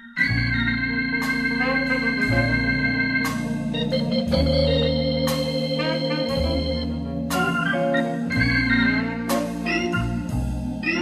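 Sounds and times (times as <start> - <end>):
easy-listening organ music: 0.0 - 11.0.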